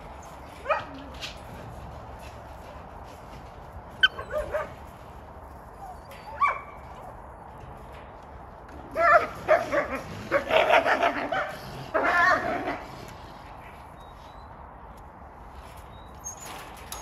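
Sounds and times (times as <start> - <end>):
dog yipping and whining: 4.0 - 4.6, 5.8 - 6.8, 15.9 - 17.0.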